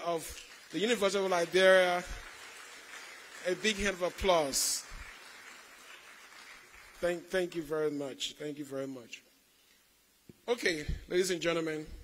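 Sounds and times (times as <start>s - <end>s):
audience applause: 0.0s - 7.3s.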